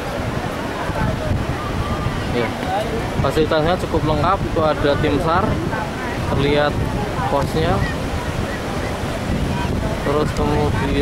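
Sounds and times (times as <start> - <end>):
surf breaking on shore: 0.0 - 11.0
wind buffeting microphone: 0.0 - 11.0.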